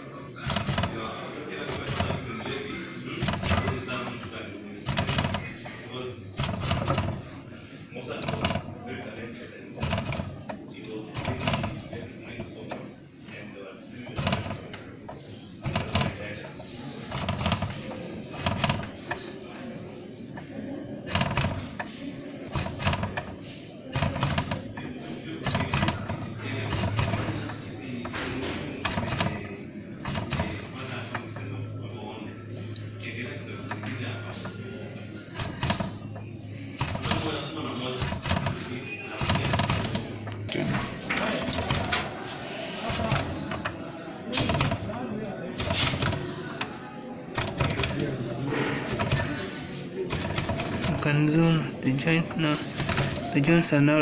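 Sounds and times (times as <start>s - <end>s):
indistinct background talk: 0.0s - 54.0s.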